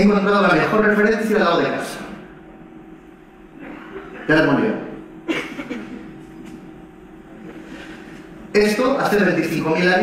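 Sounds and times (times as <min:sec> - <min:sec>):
voice echoing in a hall: 0:00.0 - 0:06.2, 0:06.8 - 0:10.0
faint steady hum: 0:00.0 - 0:10.0.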